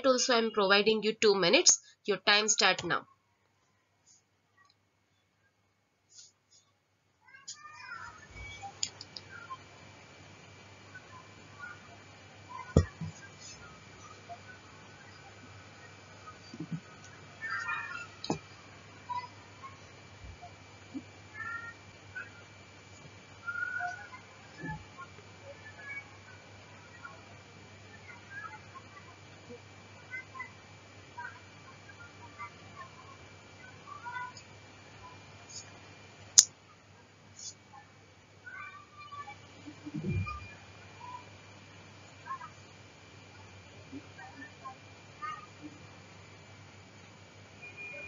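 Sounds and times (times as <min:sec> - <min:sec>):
steady low hum: 0:04.0 - 0:48.0
faint animal chirps: 0:23.4 - 0:24.8.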